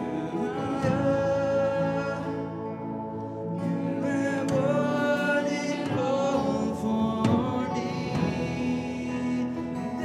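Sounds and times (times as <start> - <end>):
worship band music with acoustic guitar: 0.0 - 10.0.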